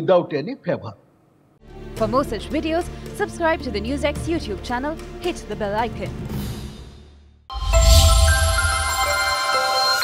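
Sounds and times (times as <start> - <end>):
chime tones ringing: 7.5 - 10.0.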